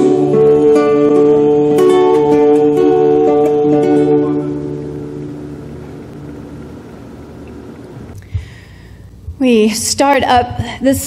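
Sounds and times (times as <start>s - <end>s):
classical guitar chord ringing: 0.0s - 8.2s.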